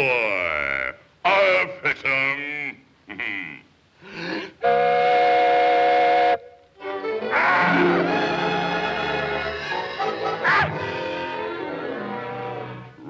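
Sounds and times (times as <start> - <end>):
orchestral score: 6.8 - 13.0.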